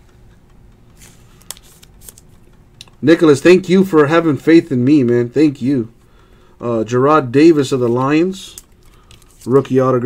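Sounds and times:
soft plastic rustles: 0:00.9 - 0:03.0, 0:07.8 - 0:09.9.

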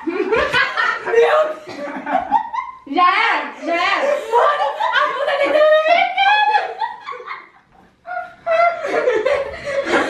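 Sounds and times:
people laughing: 0:00.0 - 0:02.8, 0:04.0 - 0:10.0.

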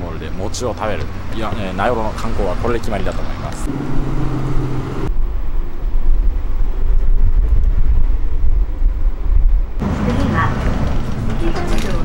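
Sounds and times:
bus engine rumbling: 0:00.0 - 0:06.9, 0:07.6 - 0:12.0
road noise: 0:00.0 - 0:12.0
wind on microphone: 0:03.6 - 0:09.8.

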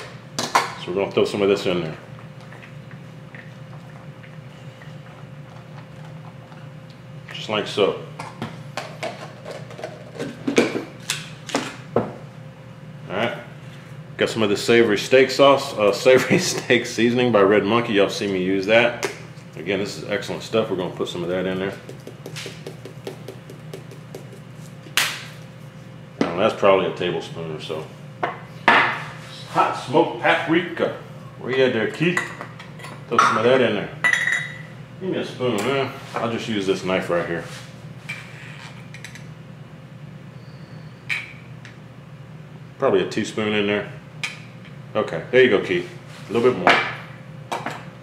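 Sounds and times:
low steady hum: 0:00.0 - 0:48.0
knocks and clinks on wooden countertop: 0:21.8 - 0:24.4.

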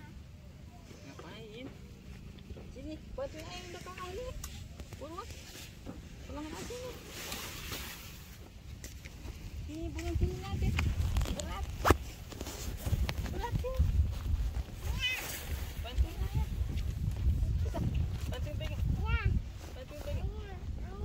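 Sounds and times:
tent rustling and knocking: 0:03.4 - 0:21.0.

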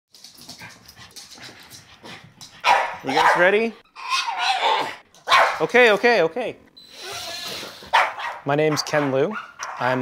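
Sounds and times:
dog panting: 0:00.3 - 0:03.4.

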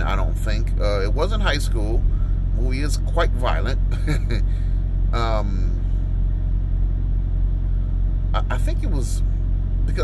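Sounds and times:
low rumble inside car cabin: 0:00.0 - 0:10.0.

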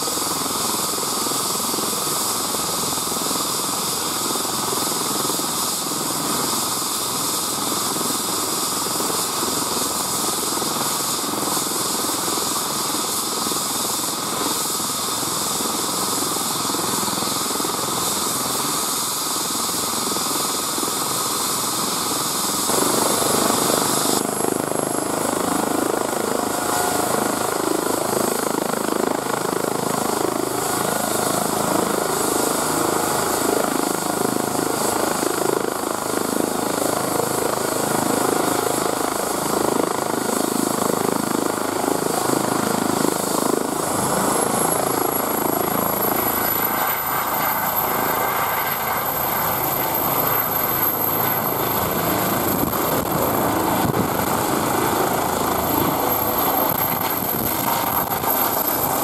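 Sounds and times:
helicopter turbines and rotor: 0:00.0 - 0:59.0
high turbine whine: 0:00.0 - 0:59.0.

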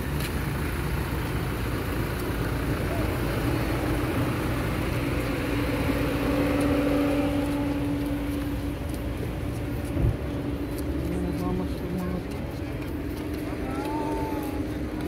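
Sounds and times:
car engines running: 0:00.0 - 0:15.0
crowd voices: 0:06.6 - 0:15.0.

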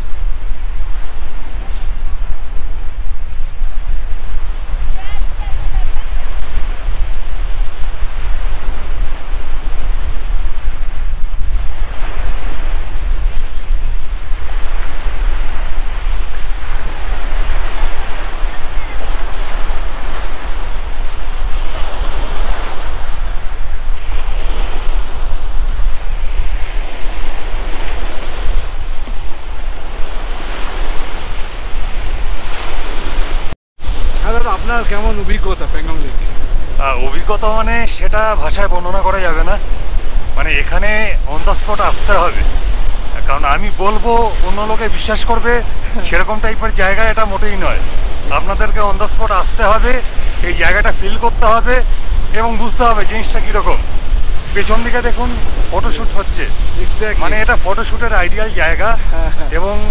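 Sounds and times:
waves breaking on shore: 0:00.0 - 0:59.9
wind buffeting microphone: 0:00.0 - 0:59.9.

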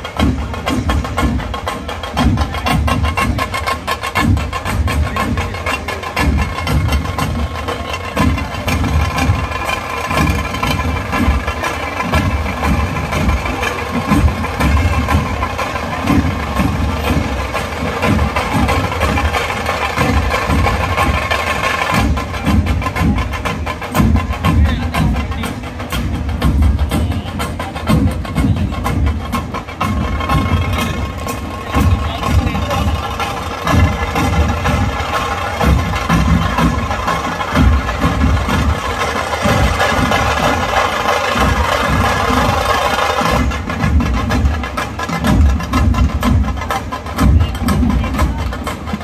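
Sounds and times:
folk drums playing: 0:00.0 - 0:49.0.

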